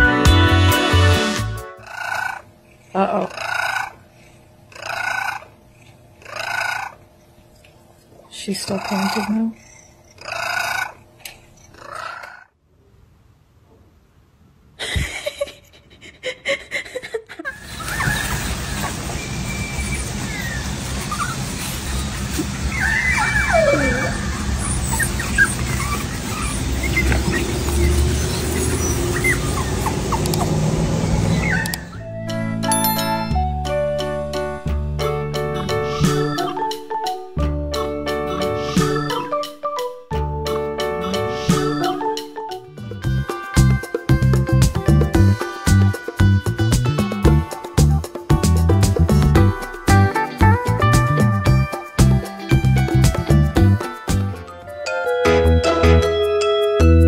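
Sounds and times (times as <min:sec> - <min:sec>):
small dogs squeaking: 0:08.6 - 0:12.4, 0:17.6 - 0:30.4, 0:31.3 - 0:32.0.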